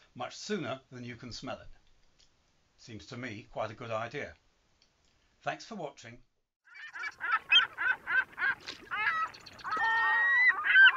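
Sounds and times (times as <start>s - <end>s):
gulls calling: 6.6s - 10.9s.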